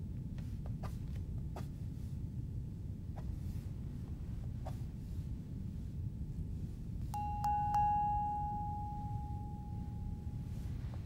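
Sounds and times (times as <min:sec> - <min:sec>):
bell-like chime ringing: 0:07.2 - 0:10.6.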